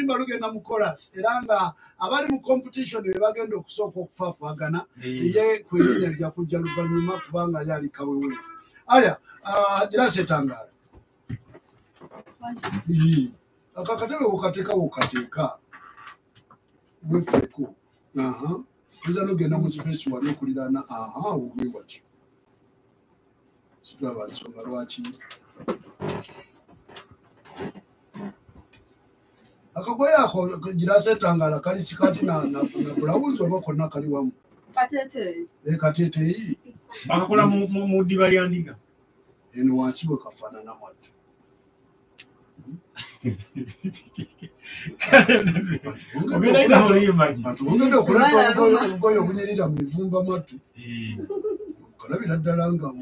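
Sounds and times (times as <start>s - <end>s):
person's voice wavering: 4.9s - 9.1s, 31.8s - 33.8s, 36.2s - 38.4s, 43.2s - 49.6s, 50.8s - 51.7s.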